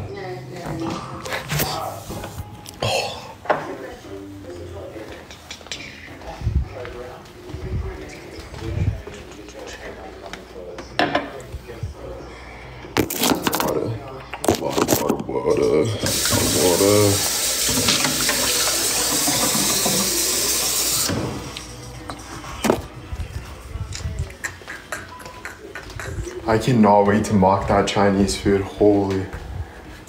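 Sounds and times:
water running from tap: 16.0s - 21.8s.

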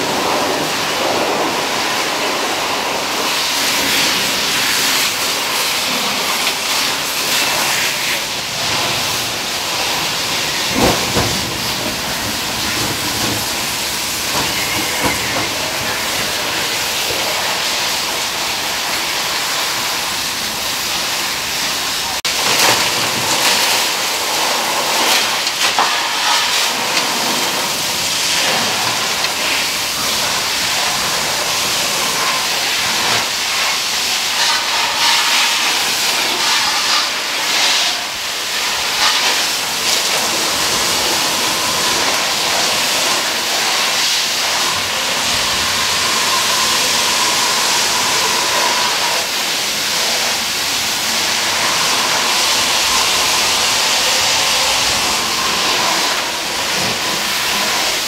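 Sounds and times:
fire hose spraying water: 0.0s - 58.0s.

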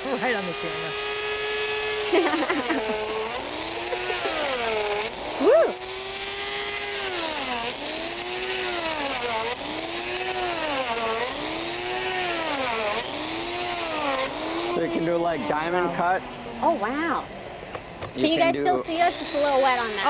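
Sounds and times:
die grinder cutting ice: 0.0s - 17.2s, 17.8s - 20.0s.

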